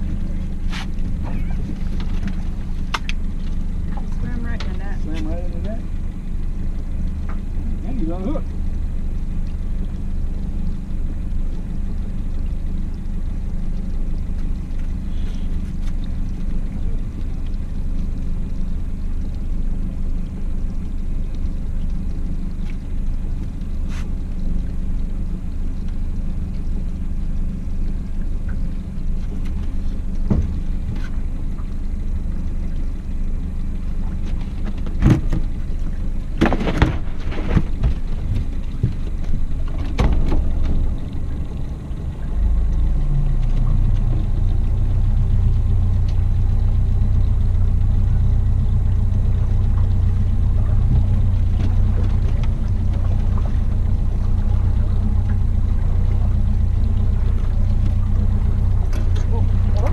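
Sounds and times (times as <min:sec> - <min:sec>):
outboard motor idling: 0:00.0 - 0:59.9.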